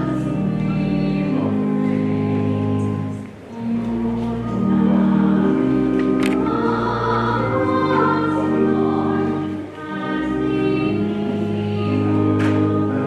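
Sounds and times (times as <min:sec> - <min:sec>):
choir singing a slow hymn: 0:00.0 - 0:13.0.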